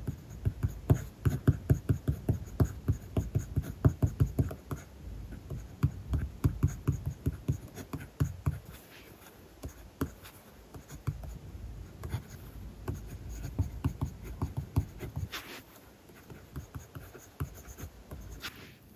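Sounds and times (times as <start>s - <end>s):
pencil point tapping: 0.0s - 8.8s, 9.6s - 11.4s, 12.0s - 18.6s
pencil writing on paper: 0.0s - 18.8s.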